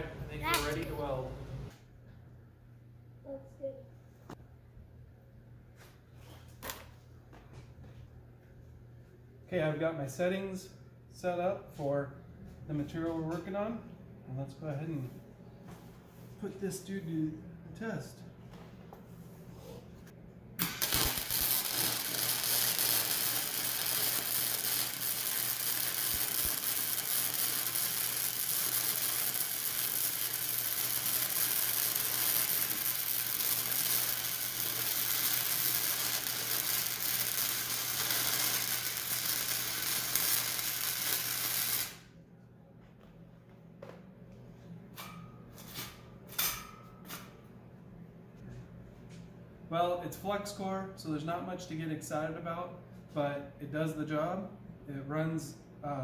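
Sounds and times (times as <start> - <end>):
welding arc buzzing: 20.6 - 42.1.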